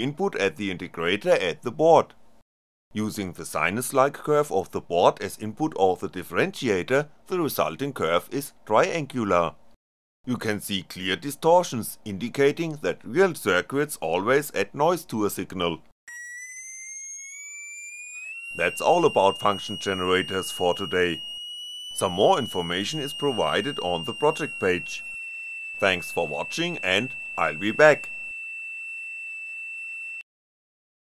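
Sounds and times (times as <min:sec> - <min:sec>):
shrill piezo buzzer tone: 0:16.1 - 0:30.3.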